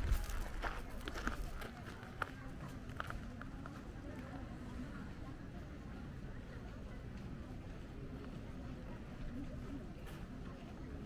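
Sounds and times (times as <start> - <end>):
footsteps on gravel: 0.0 - 3.8
faint background chatter: 0.0 - 11.0.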